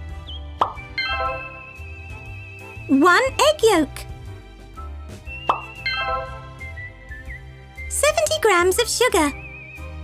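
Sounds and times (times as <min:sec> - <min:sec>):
light background music: 0:00.0 - 0:10.0
upward-sweeping plop effect: 0:05.4 - 0:06.4.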